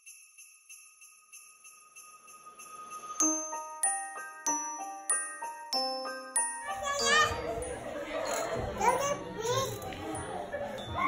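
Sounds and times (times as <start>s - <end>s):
young children calling and chattering: 5.8s - 11.0s.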